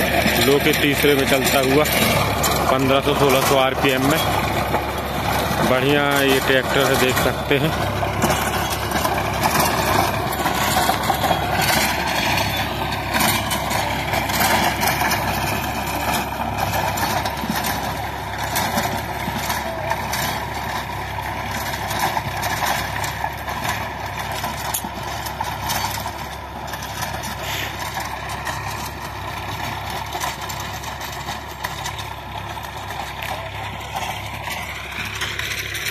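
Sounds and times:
tractor diesel engine under load: 0.0s - 35.9s.

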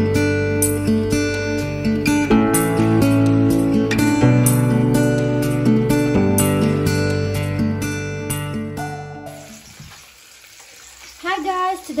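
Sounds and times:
background music: 0.0s - 9.6s
fish frying in a pan: 9.4s - 12.0s.

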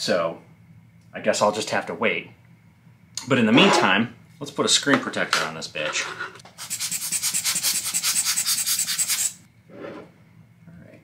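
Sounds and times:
quick back-and-forth rubbing: 6.5s - 9.5s.

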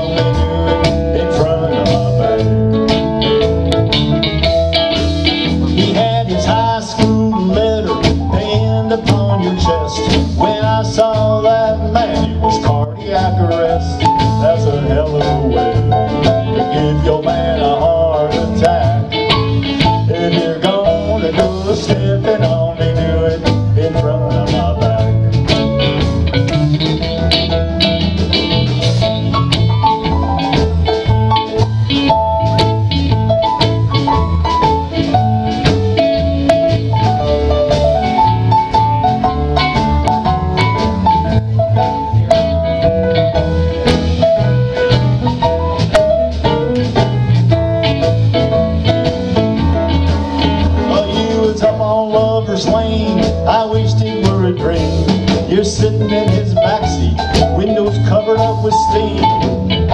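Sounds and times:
country band playing instrumental: 0.0s - 59.9s.

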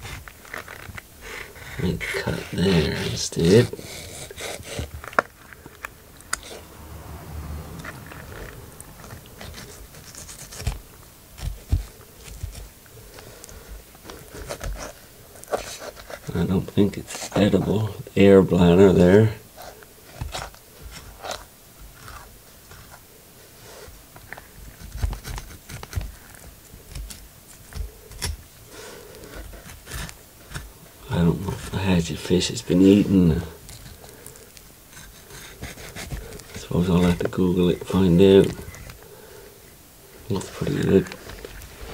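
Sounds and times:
knife cutting fish flesh: 11.4s - 12.7s, 24.8s - 28.4s, 29.2s - 30.7s
knife cutting fish and bones: 24.7s - 30.7s, 33.6s - 37.8s.

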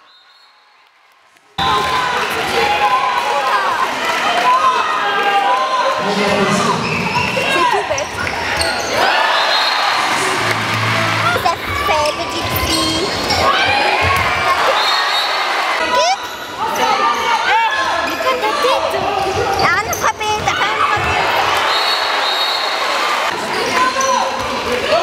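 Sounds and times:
voices of players and crowd: 0.8s - 25.0s
shoes squeaking on floor: 6.8s - 9.0s, 11.7s - 13.5s, 19.3s - 21.1s.

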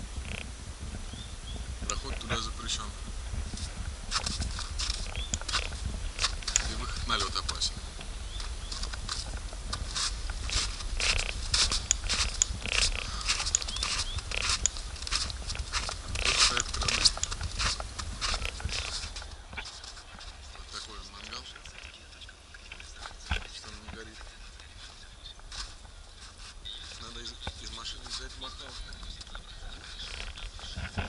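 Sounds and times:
wind buffeting microphone: 0.0s - 26.2s
footsteps crunching on snow: 0.0s - 31.0s.

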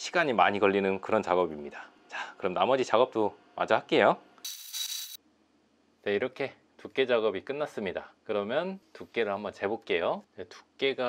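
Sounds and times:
belt grinder grinding steel: 4.5s - 5.2s.

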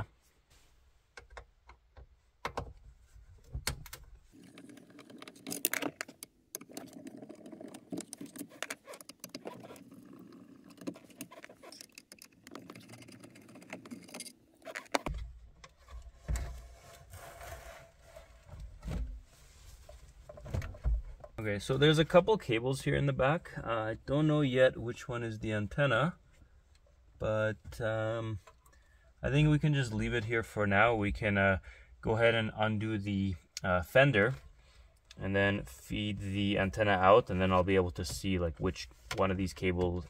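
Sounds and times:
screwdriver clicking and scraping: 4.4s - 15.1s.

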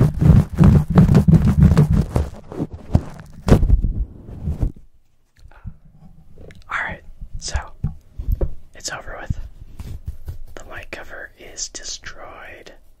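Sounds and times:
fingers scratching microphone grille: 0.0s - 4.8s, 8.9s - 11.1s
microphone handling thumps: 0.0s - 4.8s, 7.1s - 10.6s.

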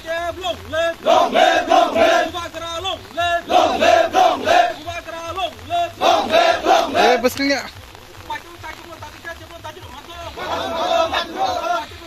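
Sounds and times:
crowd of men chanting: 0.8s - 7.2s, 10.3s - 12.0s.

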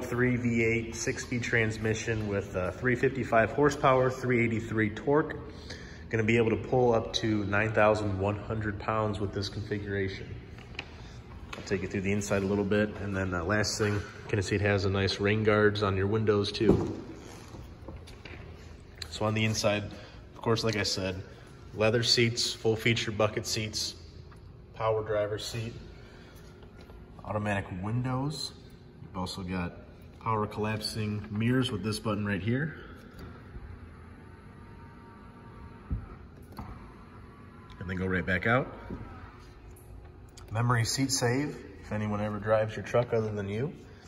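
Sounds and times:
low steady hum: 0.0s - 44.0s.

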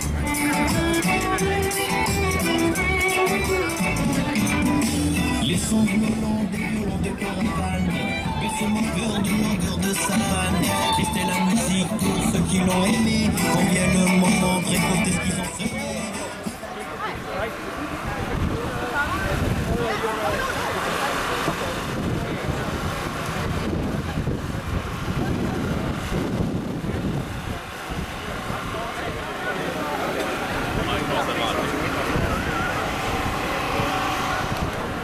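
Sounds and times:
crowd talking indistinctly: 0.0s - 35.0s
wind buffeting microphone: 17.2s - 20.6s, 21.4s - 29.4s.

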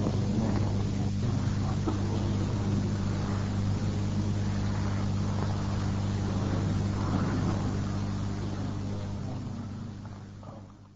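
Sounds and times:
faint indistinct room noise: 0.0s - 10.9s
low electrical hum and tape hiss: 0.0s - 10.9s.

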